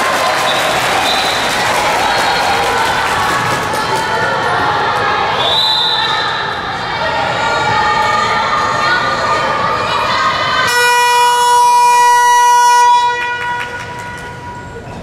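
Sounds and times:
crowd shouting: 0.0 - 11.2.

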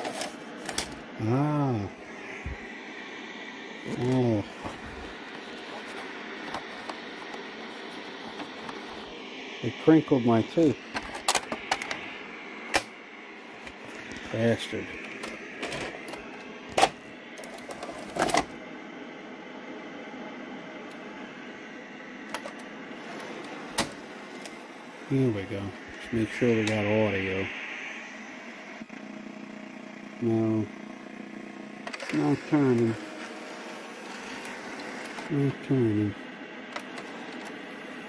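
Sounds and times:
tape mechanism motor humming: 0.0 - 38.0.

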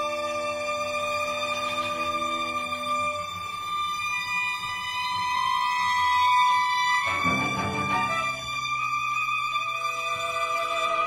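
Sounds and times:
clarinet and strings holding high note: 7.1 - 9.0.

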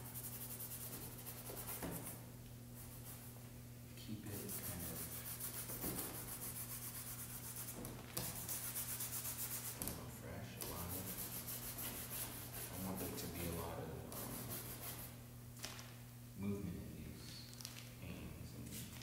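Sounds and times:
paintbrush scrubbing on canvas: 4.3 - 10.0, 10.7 - 13.5.

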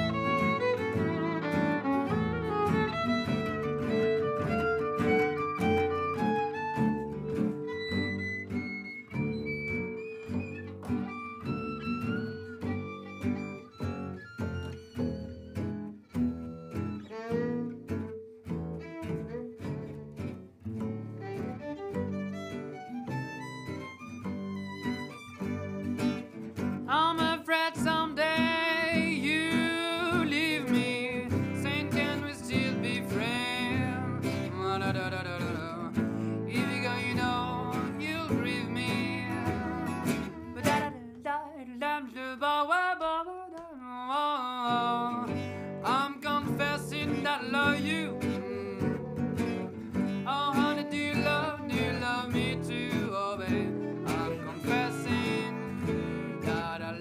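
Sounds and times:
gypsy jazz band playing: 0.0 - 41.0, 44.8 - 57.0
violin: 0.0 - 41.2, 44.5 - 57.0.

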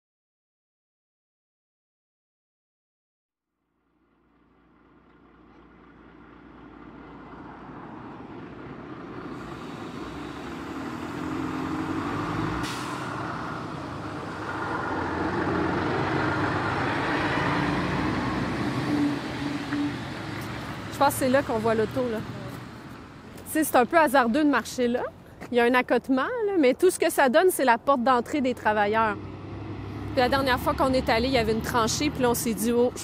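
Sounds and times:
diesel truck engine driving past: 3.8 - 24.4, 28.2 - 33.0
tyre and road noise: 3.9 - 33.0.

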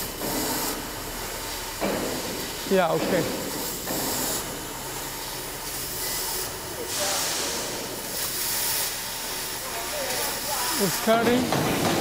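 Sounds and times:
laser cutter gas hiss: 0.0 - 12.0.

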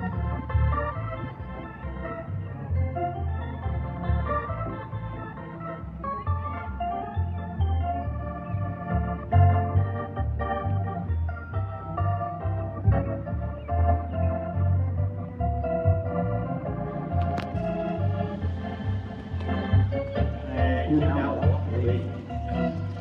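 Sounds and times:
organ music with beat: 0.0 - 23.0.

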